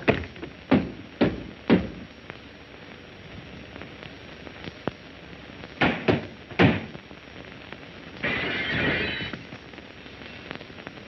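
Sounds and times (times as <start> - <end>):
crackly film soundtrack hiss: 0.0 - 11.0.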